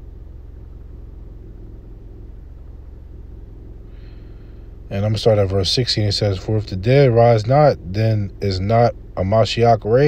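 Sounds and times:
low background hum and rumble: 0.0s - 10.0s.

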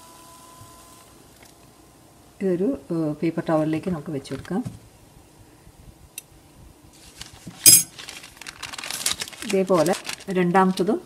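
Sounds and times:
forks clinking on a plate: 7.7s - 7.9s.

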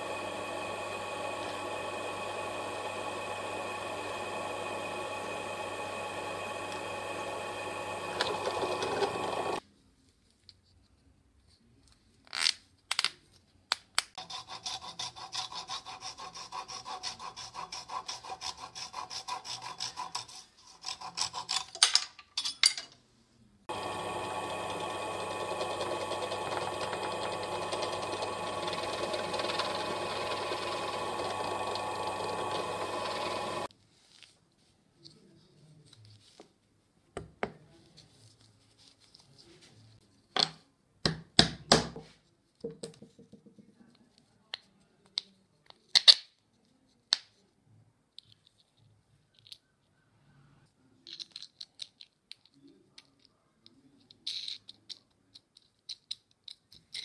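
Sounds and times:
drill press boring wood: 0.0s - 9.6s, 23.7s - 33.7s
scraping strokes on wood: 14.2s - 21.7s.

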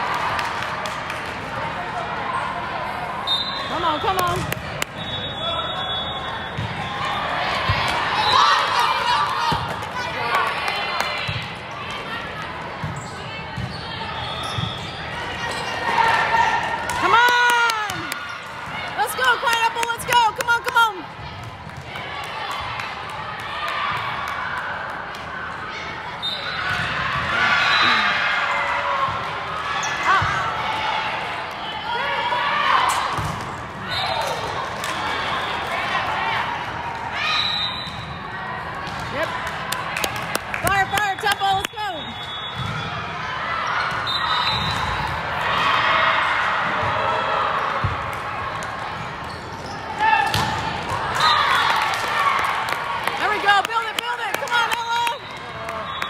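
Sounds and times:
high whistle: 3.2s - 4.2s, 4.9s - 6.6s, 37.3s - 38.1s, 41.9s - 42.8s, 44.0s - 45.0s
sneakers squeaking: 3.2s - 8.7s, 12.8s - 16.2s, 41.5s - 45.2s, 48.9s - 51.4s.

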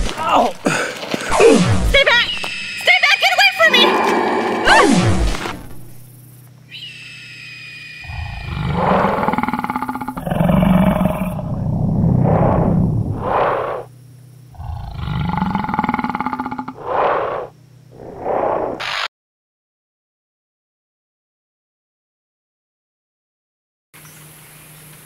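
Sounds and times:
creature growls and roars: 3.7s - 5.5s, 8.1s - 13.9s, 14.6s - 18.8s
eerie droning music: 6.7s - 10.3s.

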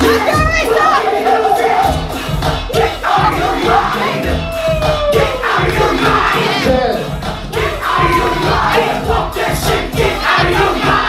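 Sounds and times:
crowd whooping and shouting: 0.0s - 11.0s
hip-hop music: 0.0s - 11.0s.

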